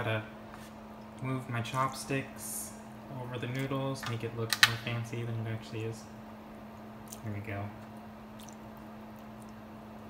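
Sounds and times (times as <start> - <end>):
steady low hum: 0.0 - 10.0
wet noodle squishing: 7.0 - 10.0.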